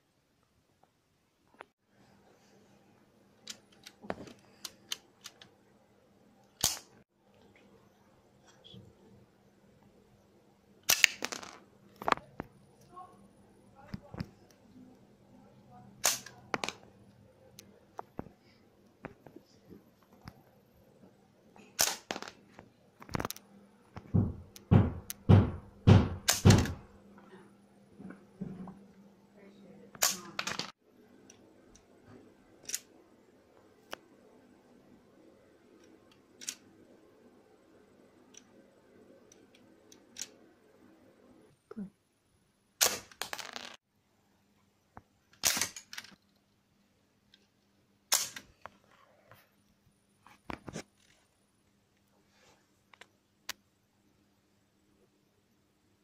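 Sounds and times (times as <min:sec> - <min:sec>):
toy gun snap: 0:06.6 - 0:06.9.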